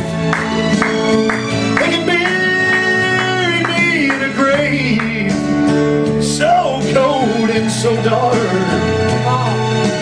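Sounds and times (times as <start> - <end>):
acoustic guitar: 0.0 - 10.0
sliding melody line: 0.0 - 10.0
sustained backing chords: 0.0 - 10.0.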